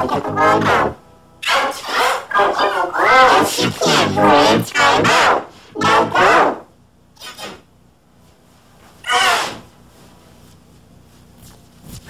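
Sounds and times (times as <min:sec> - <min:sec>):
child screaming warbled: 0:09.0 - 0:09.6.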